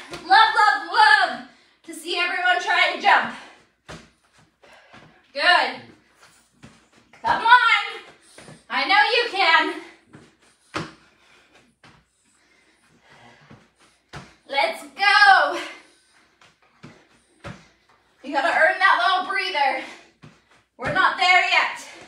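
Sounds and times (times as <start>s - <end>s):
person's voice: 7.2s - 8.0s.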